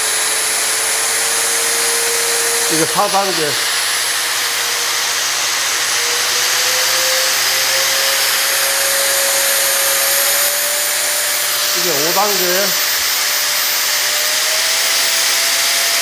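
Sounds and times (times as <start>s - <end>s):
angle grinder running: 0.0s - 16.0s.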